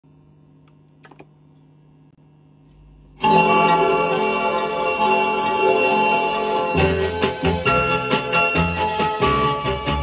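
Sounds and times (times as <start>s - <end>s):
vinyl record groove hum: 0.5s - 10.0s
vinyl record clicks: 0.6s - 1.3s.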